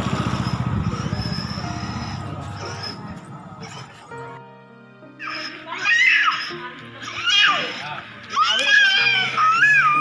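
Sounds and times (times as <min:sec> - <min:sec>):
engine running with low pulse: 0:00.0 - 0:04.4.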